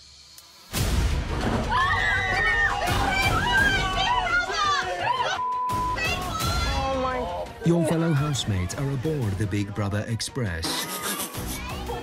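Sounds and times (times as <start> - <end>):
women shrieking and cheering: 1.6 - 8.6.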